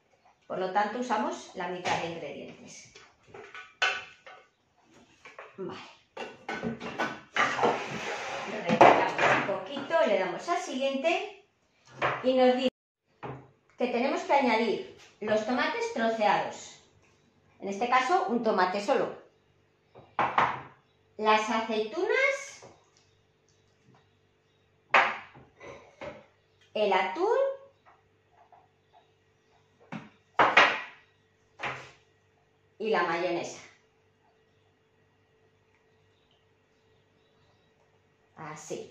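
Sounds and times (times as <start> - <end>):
dishes knocking and clattering: 3.3 - 4.5, 6.2 - 8.0, 8.7 - 9.9, 20.0 - 20.8
metal bowl rustling and scraping: 7.4 - 8.8.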